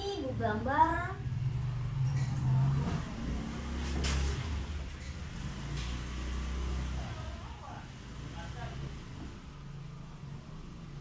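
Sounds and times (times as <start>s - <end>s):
low engine-like rumble: 0.0s - 6.2s.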